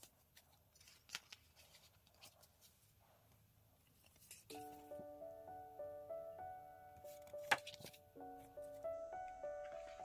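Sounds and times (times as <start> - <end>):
paper rustling: 0.0 - 3.0, 3.8 - 4.9, 7.1 - 8.0.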